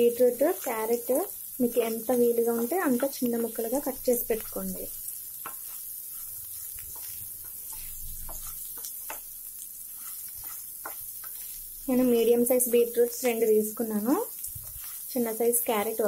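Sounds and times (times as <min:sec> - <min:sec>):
vegetables sizzling in oil: 0:00.0 - 0:16.0
wooden spatula scraping pan: 0:05.3 - 0:12.3, 0:14.3 - 0:15.4.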